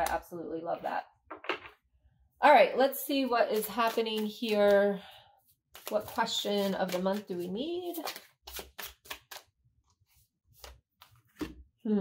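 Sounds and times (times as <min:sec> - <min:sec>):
cards being shuffled: 0:03.5 - 0:04.8, 0:05.7 - 0:09.5, 0:10.1 - 0:11.6.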